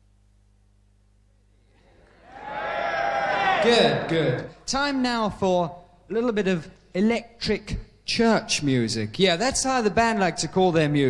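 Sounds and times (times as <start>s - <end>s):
low mains hum: 0.0s - 11.0s
man speaking into a microphone: 3.6s - 11.0s.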